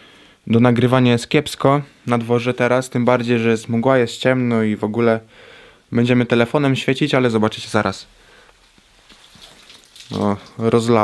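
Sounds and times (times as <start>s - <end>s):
water dripping: 8.4s - 11.0s
water pouring into bowls: 9.1s - 10.9s.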